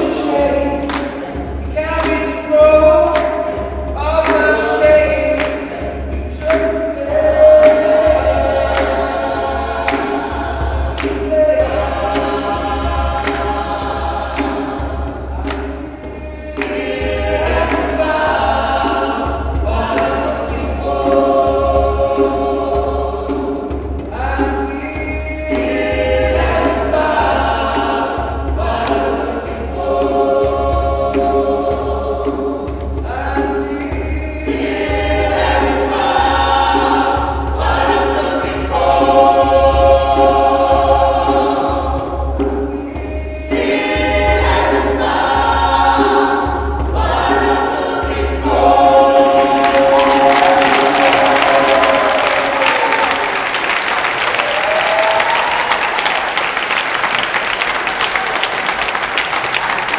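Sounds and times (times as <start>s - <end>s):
gospel choir singing in harmony: 0.0s - 59.9s.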